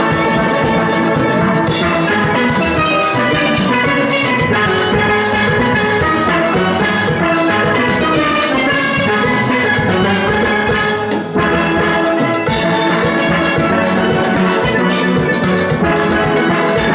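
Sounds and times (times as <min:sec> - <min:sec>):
steel pan orchestra playing: 0:00.0 - 0:16.9.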